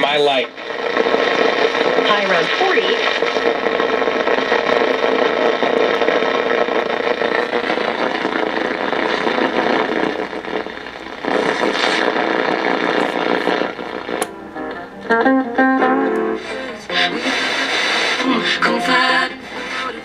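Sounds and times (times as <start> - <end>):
radio static hiss: 0.0 - 20.0.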